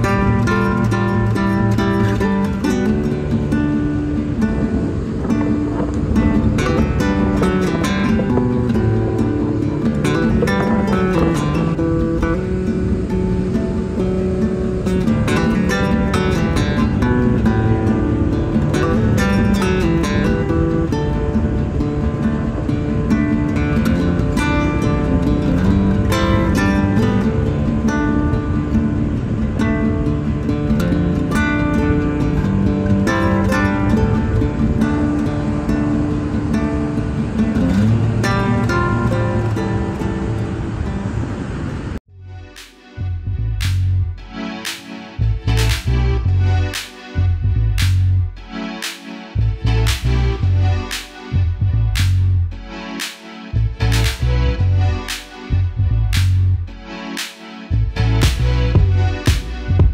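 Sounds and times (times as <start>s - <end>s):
strummed acoustic guitar music: 0.0s - 59.9s.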